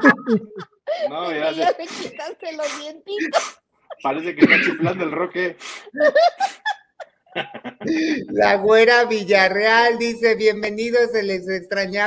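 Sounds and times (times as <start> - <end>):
people laughing: 0.0 - 2.5, 3.2 - 5.2, 5.9 - 8.4.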